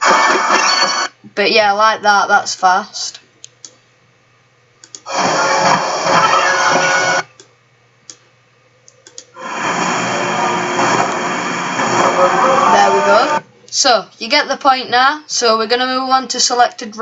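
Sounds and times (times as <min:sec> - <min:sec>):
faint clicks: 0:04.8 - 0:05.1, 0:08.8 - 0:09.3
sped-up jumble of noise: 0:09.4 - 0:13.4.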